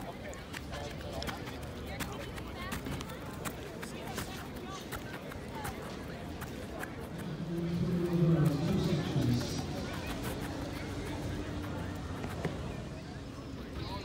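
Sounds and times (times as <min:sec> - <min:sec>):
distant people talking: 0:00.0 - 0:14.0.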